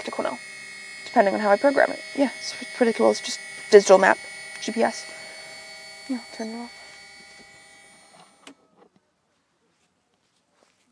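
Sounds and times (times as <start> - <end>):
high electronic whine: 0.0 - 8.6.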